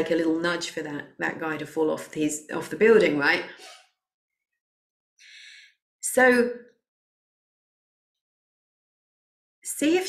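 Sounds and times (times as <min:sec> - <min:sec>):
woman's faint in-breath: 0:05.2 - 0:05.8.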